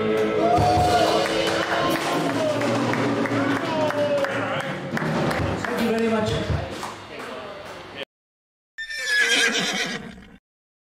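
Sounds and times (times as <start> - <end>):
horse whinny: 8.8 - 10.4.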